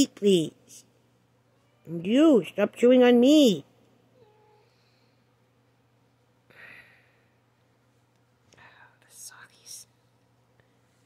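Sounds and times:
woman whispering: 8.6s - 10.0s.

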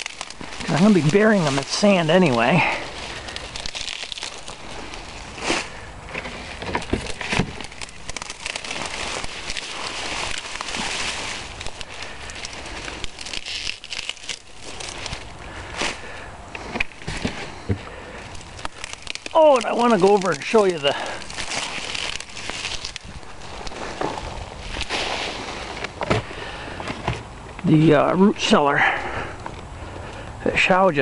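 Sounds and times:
crumbling soil: 0.0s - 31.0s
rustling leaves: 0.0s - 31.0s.

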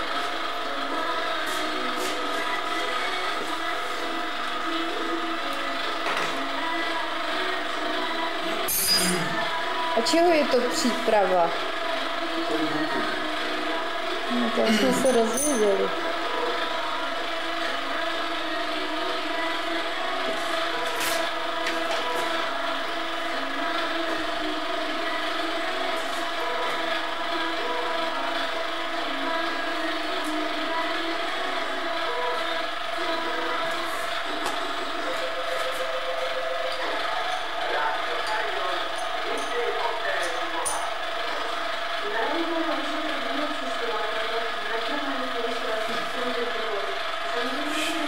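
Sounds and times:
milling machine humming: 0.0s - 48.0s.

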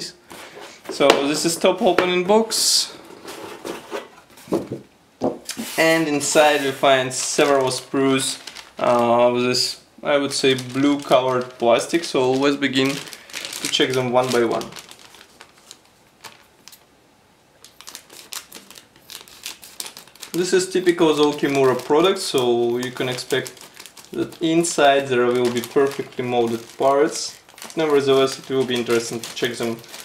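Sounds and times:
cardboard scraping and rustling: 3.0s - 4.8s
plastic bag crinkling: 5.6s - 16.9s, 17.6s - 30.0s.

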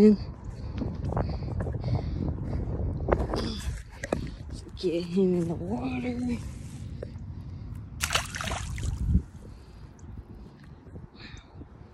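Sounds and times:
pond water splashing: 8.0s - 9.3s.

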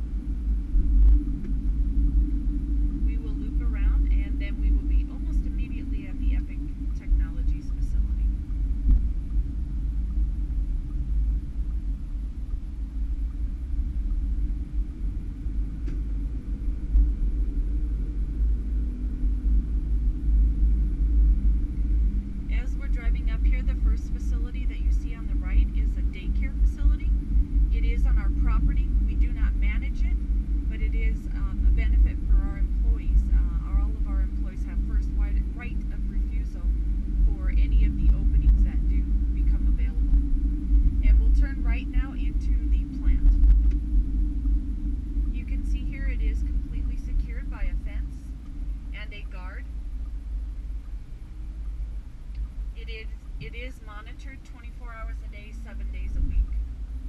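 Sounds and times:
car cabin rumble: 0.0s - 17.5s, 22.5s - 44.6s, 45.2s - 49.6s, 52.4s - 56.6s
indistinct talking: 3.1s - 8.4s, 22.5s - 40.1s, 41.0s - 43.4s, 45.4s - 48.3s, 49.0s - 49.6s, 52.8s - 56.4s.

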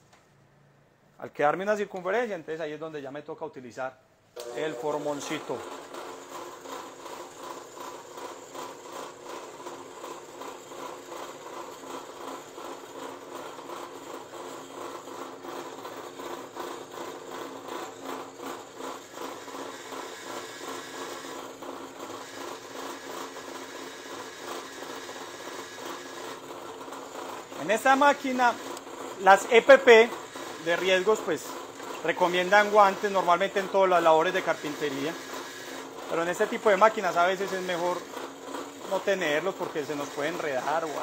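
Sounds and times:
drill press boring into wood: 4.4s - 41.0s.

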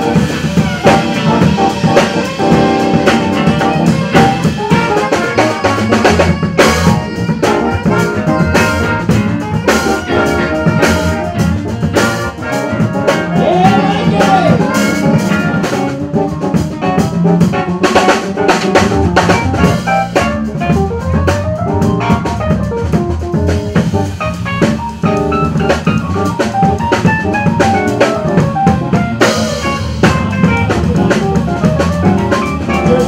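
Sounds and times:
electric guitar: 0.0s - 33.0s
jazz band playing: 0.0s - 33.0s
saxophone: 0.0s - 33.0s
snare and cymbal hits: 0.0s - 33.0s.

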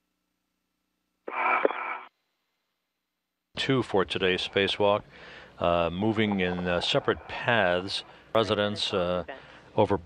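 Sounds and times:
radio communication voice: 3.6s - 9.4s.

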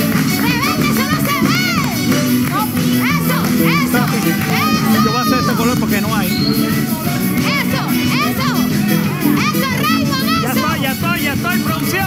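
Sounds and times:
background music: 0.0s - 12.0s
people shouting and cheering: 0.0s - 12.0s.

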